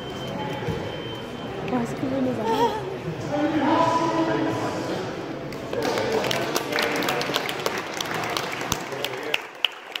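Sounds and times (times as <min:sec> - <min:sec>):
murmur of crowd chatter: 0:00.0 - 0:10.0
hand claps: 0:05.5 - 0:10.0.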